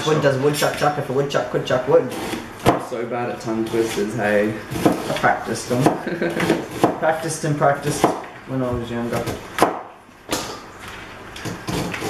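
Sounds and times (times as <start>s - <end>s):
knife chopping on cutting board: 2.2s - 2.9s, 4.7s - 7.1s, 7.8s - 8.3s, 9.2s - 10.5s.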